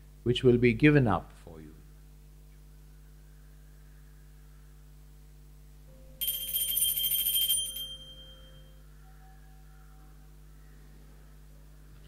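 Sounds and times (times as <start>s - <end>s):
small bells ringing: 6.2s - 8.8s.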